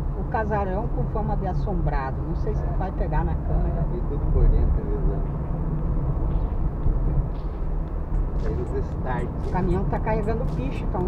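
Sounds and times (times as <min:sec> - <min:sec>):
car engine low rumble: 0:00.0 - 0:11.0.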